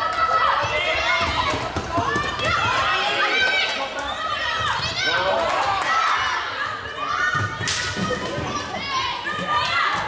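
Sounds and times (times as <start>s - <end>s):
young players shouting: 0.0s - 10.0s.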